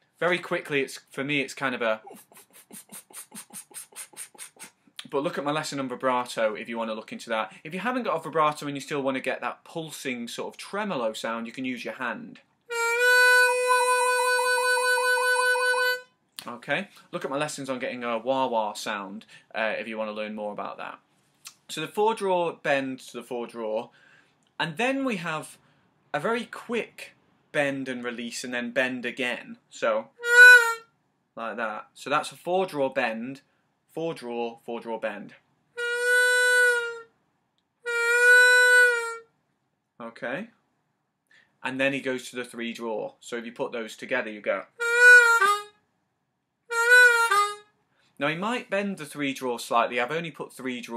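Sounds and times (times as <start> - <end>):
harmonica note with tremolo: 12.7 - 16.1, 30.2 - 30.9, 35.8 - 37.1, 37.8 - 39.3, 44.8 - 45.7, 46.7 - 47.7.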